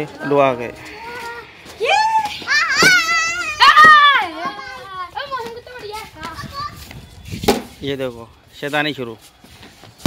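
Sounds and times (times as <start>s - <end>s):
children's voices: 0.0s - 7.0s
child shouting and squealing: 1.0s - 5.4s, 6.3s - 6.9s.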